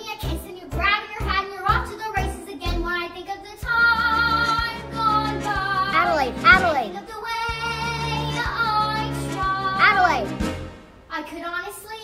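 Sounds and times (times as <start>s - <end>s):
girl singing a show tune: 0.0s - 10.4s, 11.1s - 12.0s
recorded backing track: 0.0s - 12.0s.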